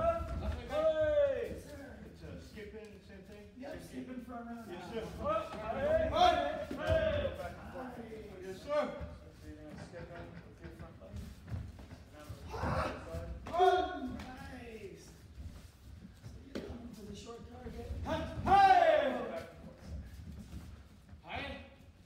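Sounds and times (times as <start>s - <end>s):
voices echoing in a hall: 0.0s - 22.0s.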